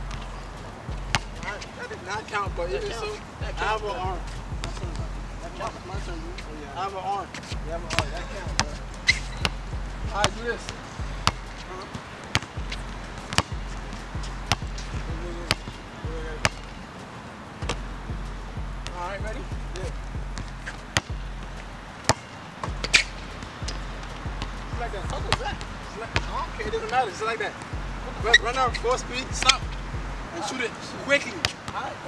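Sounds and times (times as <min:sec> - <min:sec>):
basketball bouncing on asphalt: 0:00.0 - 0:01.7, 0:02.5 - 0:06.5, 0:07.3 - 0:17.0, 0:17.6 - 0:27.0, 0:27.6 - 0:30.3.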